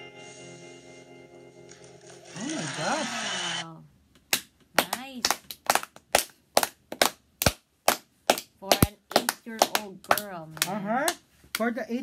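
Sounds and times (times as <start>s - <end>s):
hands clapping: 4.2s - 11.8s.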